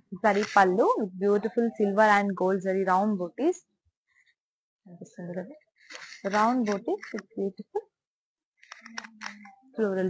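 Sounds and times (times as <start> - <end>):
person speaking: 0.0 - 3.4, 4.9 - 7.9.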